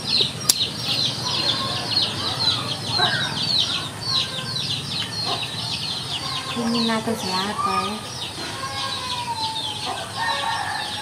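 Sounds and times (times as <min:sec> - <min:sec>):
chicks cheeping: 0:00.0 - 0:11.0.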